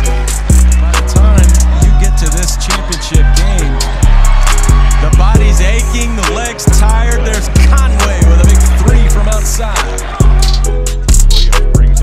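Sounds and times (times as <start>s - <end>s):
deep bass notes: 0.0s - 12.0s
hip-hop music: 0.0s - 12.0s.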